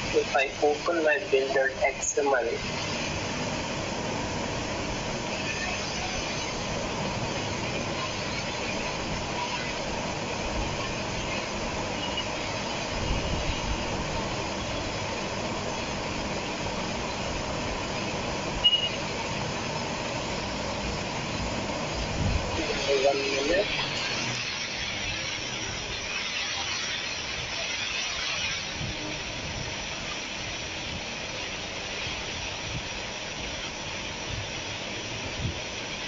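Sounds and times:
steady hiss with low rumble: 0:00.0 - 0:36.0.

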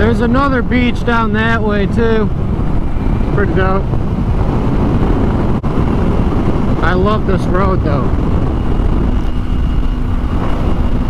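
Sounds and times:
wind noise on microphone: 0:00.0 - 0:11.0.

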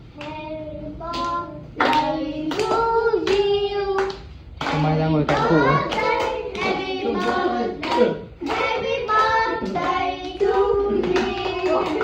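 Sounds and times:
family singing birthday song: 0:00.0 - 0:12.0
hands clapping along: 0:01.1 - 0:12.0.

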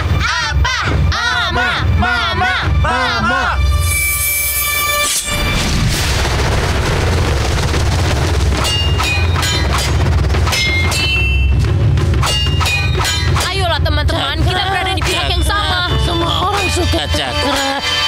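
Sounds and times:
dramatic music: 0:00.0 - 0:18.0
metallic ring of blades: 0:08.5 - 0:13.6
metallic clangs of blades: 0:12.2 - 0:13.6.

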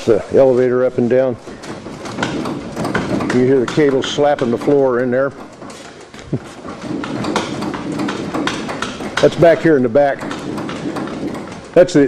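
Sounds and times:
control cables slapping floor: 0:00.0 - 0:12.0.

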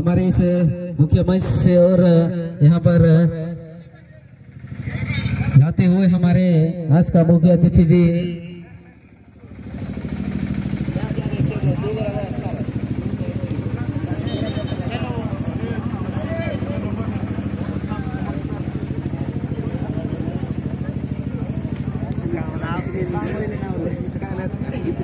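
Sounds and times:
small engine idling: 0:03.6 - 0:05.6, 0:08.8 - 0:25.0
spectators chattering: 0:08.9 - 0:25.0.

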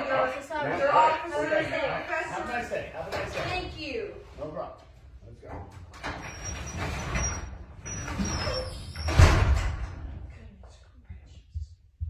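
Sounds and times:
garage door closing: 0:05.5 - 0:10.3
garage door landing thud: 0:05.9 - 0:10.3
thin high squeal: 0:06.2 - 0:09.2.

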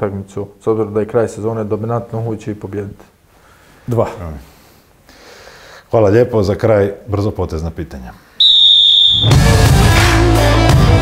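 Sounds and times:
high steady tone: 0:08.4 - 0:09.6
loud rock music with guitar: 0:09.2 - 0:11.0.

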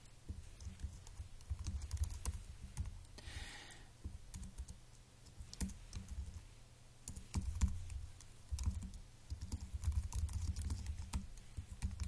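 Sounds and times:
typing on computer keyboard: 0:00.6 - 0:02.9, 0:04.3 - 0:06.4, 0:07.1 - 0:12.0.

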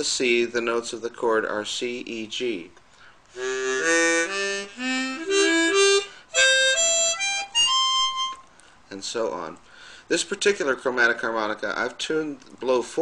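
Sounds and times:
chromatic harmonica playing: 0:03.3 - 0:08.6.

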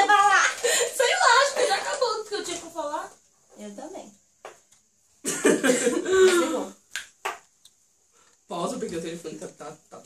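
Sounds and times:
person coughing: 0:05.2 - 0:06.8.

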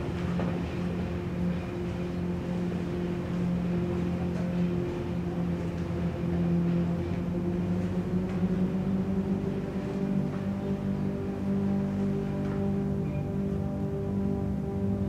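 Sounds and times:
low sustained music drone: 0:00.0 - 0:15.0.

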